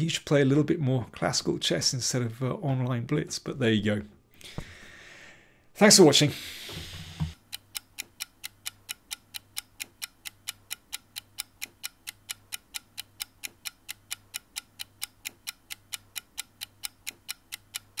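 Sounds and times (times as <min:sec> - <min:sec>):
steady ticking: 0:07.2 - 0:18.0.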